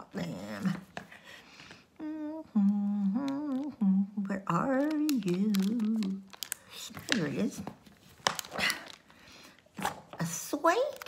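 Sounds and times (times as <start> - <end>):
woman humming: 2.0 - 6.2.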